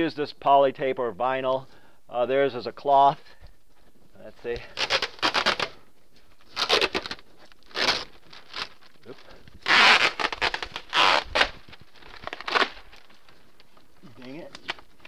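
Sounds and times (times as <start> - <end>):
plastic sheeting crinkling: 3.2 - 15.0
tape ripping off wall: 4.6 - 5.8, 6.4 - 13.4.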